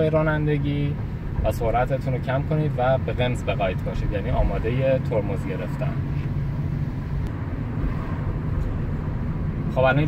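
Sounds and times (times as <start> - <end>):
car engine and tyre hum: 0.0 - 10.0.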